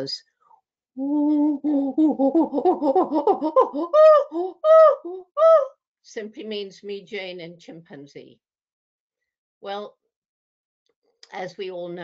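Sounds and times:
woman imitating chimpanzee hoots: 0:01.0 - 0:05.8.

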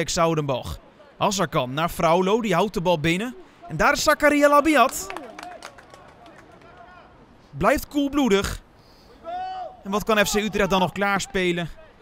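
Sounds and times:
distant players calling: 0:02.0 - 0:12.0.

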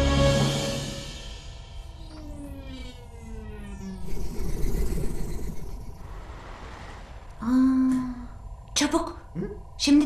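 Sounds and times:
cartoon music with falling tones: 0:01.8 - 0:04.0
rushing rumbling sound effect: 0:03.1 - 0:08.5.

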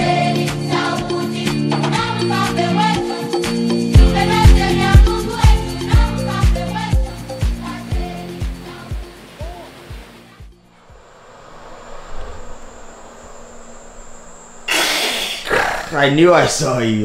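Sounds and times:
music with steady beat: 0:01.5 - 0:09.2
faint high whine: 0:10.6 - 0:16.9.

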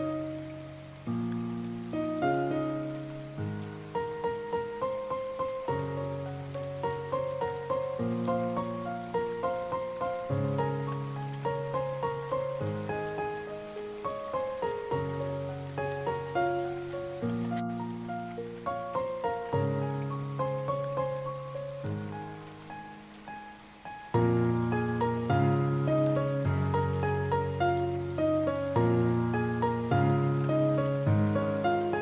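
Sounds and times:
rain pattering: 0:00.0 - 0:32.0
solo piano chords: 0:00.0 - 0:32.0.

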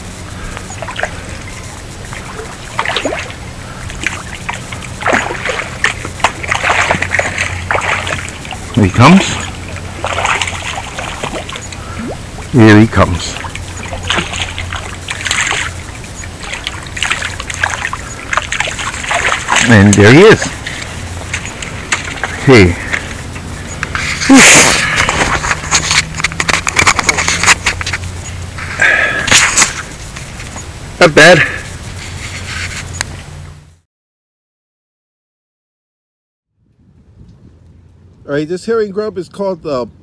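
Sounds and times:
outdoor background noise: 0:00.0 - 0:33.8, 0:36.6 - 0:40.0
fish splashing in shallow water: 0:00.1 - 0:30.7.

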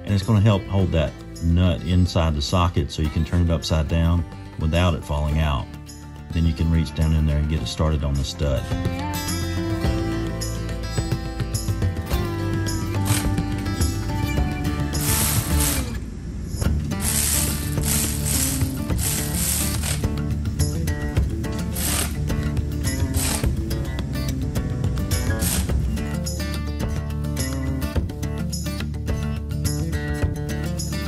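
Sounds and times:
guitar music: 0:00.0 - 0:31.0
cordless ratchet running: 0:13.0 - 0:13.4, 0:15.0 - 0:15.9, 0:16.9 - 0:20.7, 0:21.6 - 0:23.6, 0:25.1 - 0:26.0.

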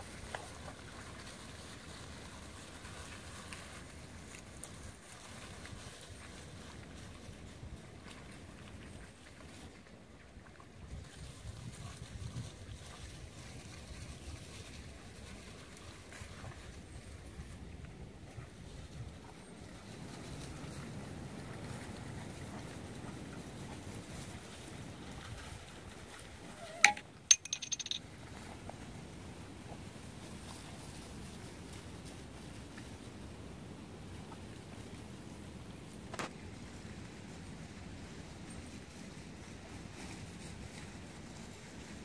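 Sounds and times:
wind rumbling on microphone: 0:00.0 - 0:26.8
high rattle: 0:26.8 - 0:28.0.

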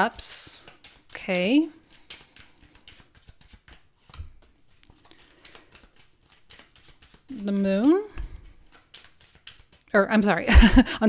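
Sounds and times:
cards shuffling: 0:00.0 - 0:10.0.

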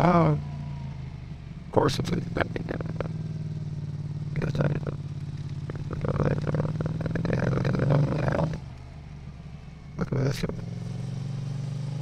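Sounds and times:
motorcycle engine drone: 0:00.0 - 0:12.0
garbled voice-like sounds: 0:01.8 - 0:03.1, 0:05.7 - 0:08.6.

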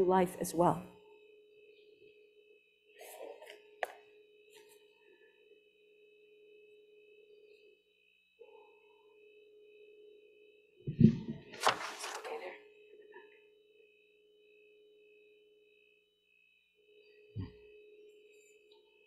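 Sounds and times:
electrical hum and whine: 0:00.0 - 0:19.0.

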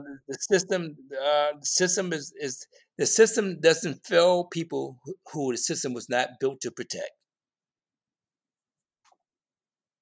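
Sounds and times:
man speaking: 0:00.0 - 0:07.2.

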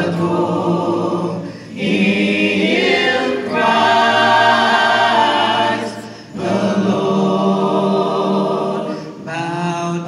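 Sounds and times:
vocal ensemble singing in harmony: 0:00.0 - 0:10.0.

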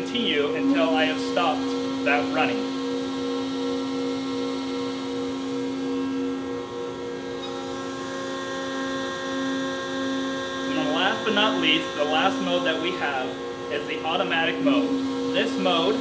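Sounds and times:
hydraulic pump motor humming: 0:00.0 - 0:16.0.

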